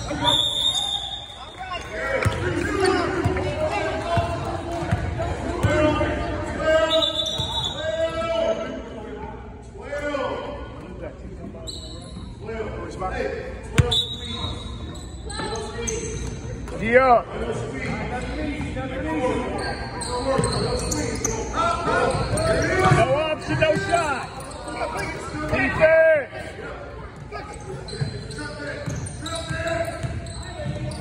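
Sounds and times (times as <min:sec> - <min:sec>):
players and spectators calling out: 0:00.0 - 0:09.1.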